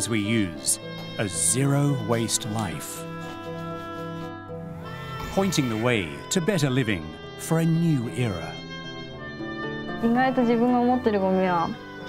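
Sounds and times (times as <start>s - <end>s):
soft background music: 0.0s - 12.0s
woman speaking: 10.0s - 11.8s.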